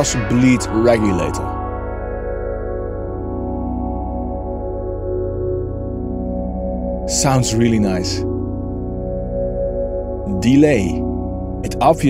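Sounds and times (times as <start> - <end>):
low pulsing drone: 0.0 - 12.0
sustained synth chord: 0.0 - 12.0.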